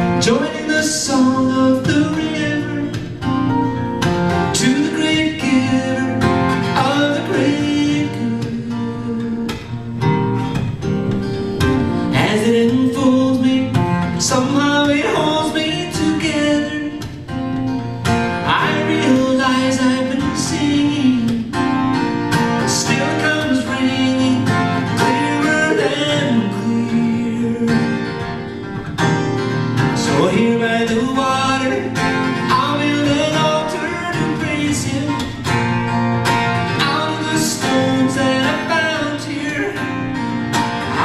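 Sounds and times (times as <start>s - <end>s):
man singing: 0.0s - 3.3s, 4.3s - 9.8s, 11.9s - 17.4s, 18.4s - 28.5s, 29.8s - 35.6s, 36.6s - 41.0s
acoustic guitar strummed: 0.0s - 41.0s.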